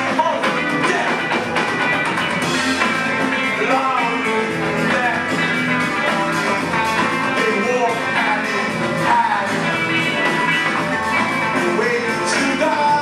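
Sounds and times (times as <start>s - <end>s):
rock band playing live: 0.0s - 13.0s.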